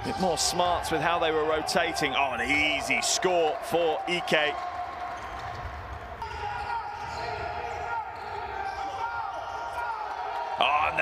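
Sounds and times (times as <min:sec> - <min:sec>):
sneakers squeaking: 0:04.5 - 0:09.8
basketball bouncing: 0:04.6 - 0:07.4.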